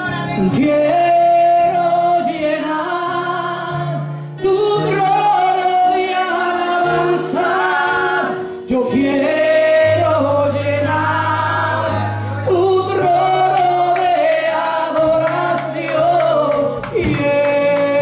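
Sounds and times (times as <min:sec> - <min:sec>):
woman singing gospel song: 0:08.7 - 0:18.0.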